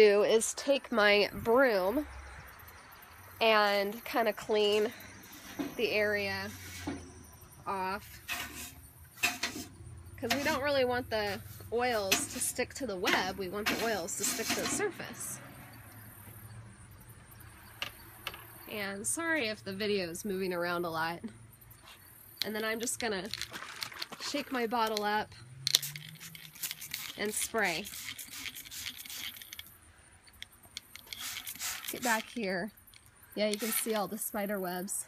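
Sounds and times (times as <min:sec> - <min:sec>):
spray bottle hissing sprays: 0:25.7 - 0:29.7, 0:30.9 - 0:32.4, 0:33.4 - 0:34.2.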